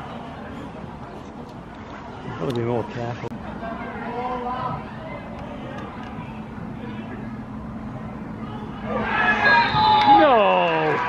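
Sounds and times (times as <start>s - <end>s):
faint voices: 0.0s - 11.0s
players shouting: 8.2s - 11.0s.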